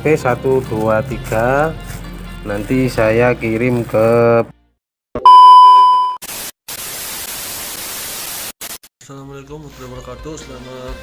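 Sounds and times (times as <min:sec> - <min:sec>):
high steady test beep: 0:05.2 - 0:06.2.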